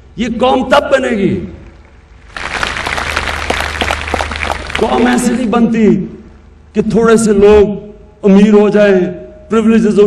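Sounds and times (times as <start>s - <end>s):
audience applauding: 2.3s - 5.4s.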